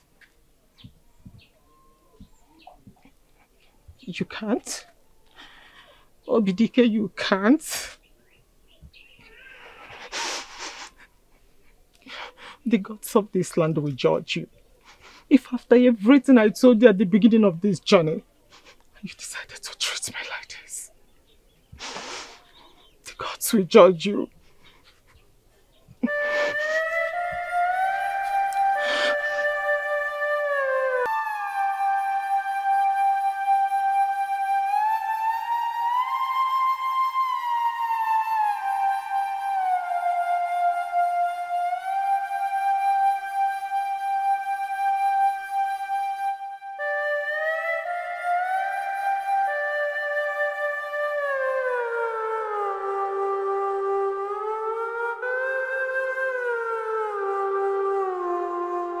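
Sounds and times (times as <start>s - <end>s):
flute-like wind tone: 1.0s - 2.9s, 26.0s - 59.0s
film score music with held notes: 26.1s - 59.0s.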